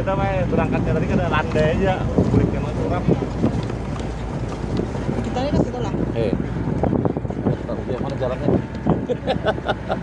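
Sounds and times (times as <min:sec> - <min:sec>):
vehicle rumbling on gravel: 0:00.0 - 0:10.0
wind buffeting microphone: 0:00.0 - 0:10.0.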